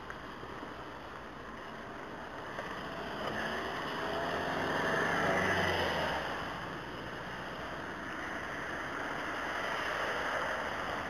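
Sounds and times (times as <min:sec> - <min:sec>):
tyres hissing on wet road: 0:00.0 - 0:11.0.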